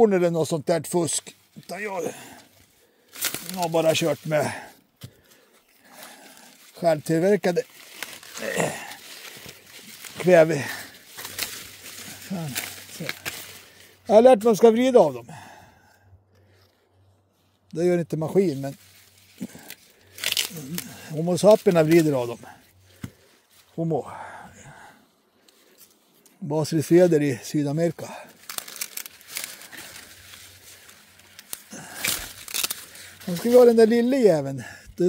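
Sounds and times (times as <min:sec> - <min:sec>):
clicks and rustles of plants: 0:00.4 - 0:15.5, 0:16.3 - 0:23.9, 0:25.4 - 0:35.0
man murmuring: 0:01.6 - 0:02.4, 0:08.3 - 0:09.0, 0:10.1 - 0:11.0, 0:12.0 - 0:13.2.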